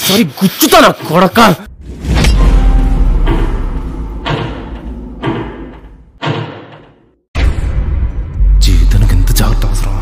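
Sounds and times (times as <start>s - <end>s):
low rumble: 1.7s - 6.2s
heavy thuds: 1.9s - 7.2s.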